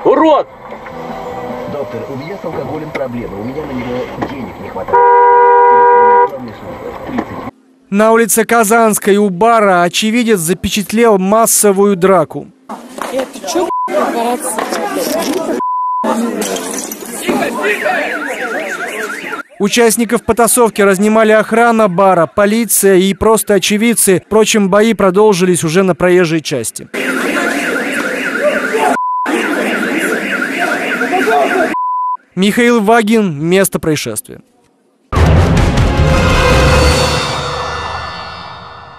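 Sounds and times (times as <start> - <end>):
electronic alarm siren warbling: 0.4 - 3.9, 17.6 - 19.6, 27.0 - 31.8
two-tone car horn blast: 4.9 - 6.4
crowd of men's voices: 12.9 - 21.4, 26.9 - 31.8
censor bleep: 15.6 - 16.2, 29.0 - 29.3, 31.7 - 32.2.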